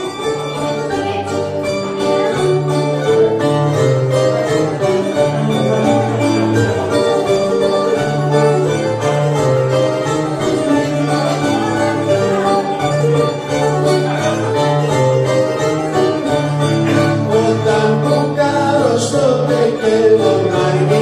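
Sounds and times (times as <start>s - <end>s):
plucked string ensemble playing: 0.0s - 21.0s.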